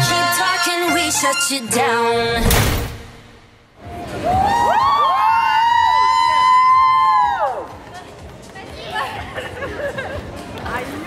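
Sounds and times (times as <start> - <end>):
women cheering woo: 4.1 - 7.7
excited chatter and laughter: 8.6 - 11.0.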